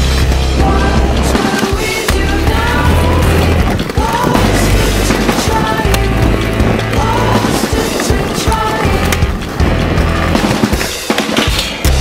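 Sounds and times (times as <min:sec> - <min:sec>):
skateboard wheels on concrete: 0:00.0 - 0:12.0.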